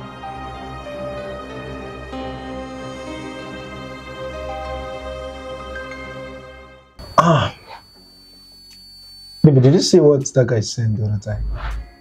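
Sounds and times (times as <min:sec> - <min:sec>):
person clearing throat: 0:07.2 - 0:07.7.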